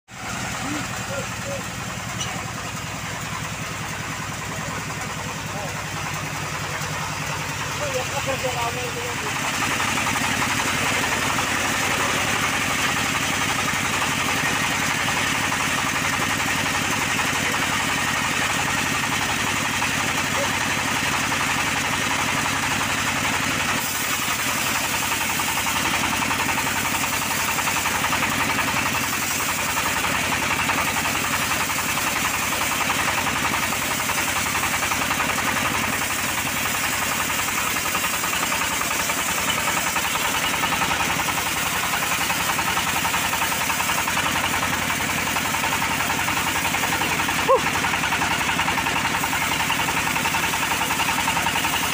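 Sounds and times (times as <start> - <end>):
band saw blade cutting log: 0.1 - 51.9
engine running steadily: 0.1 - 51.9.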